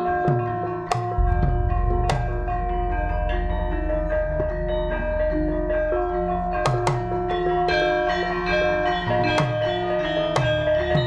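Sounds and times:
gamelan metallophone melody: 0.0s - 11.0s.

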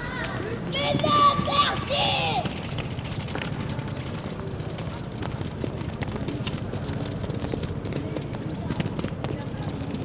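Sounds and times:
shoes clicking on stone paving: 0.0s - 10.0s.

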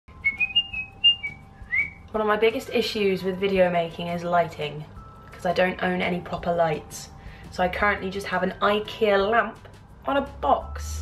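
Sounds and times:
woman whistling a tune: 0.1s - 2.1s.

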